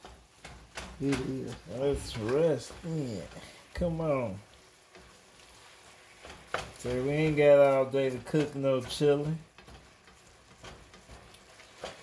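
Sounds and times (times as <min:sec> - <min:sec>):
meat sizzling in a skillet: 0:00.0 - 0:12.0
spatula tapping a pan: 0:00.0 - 0:12.0.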